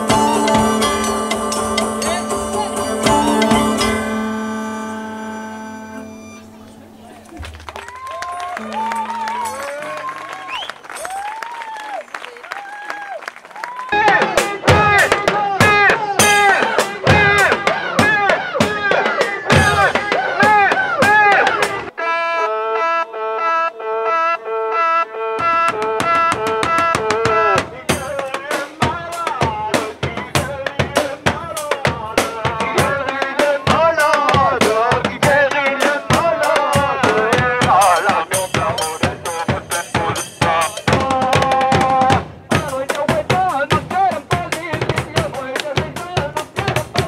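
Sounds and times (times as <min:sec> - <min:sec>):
loud drumming: 0:00.0 - 0:04.2, 0:13.9 - 0:21.9, 0:25.4 - 0:47.0
voices singing over drums: 0:00.0 - 0:04.3, 0:14.0 - 0:22.0, 0:25.3 - 0:47.0
held chord of steady tones: 0:00.0 - 0:07.3
live band music: 0:00.0 - 0:11.3, 0:14.0 - 0:47.0.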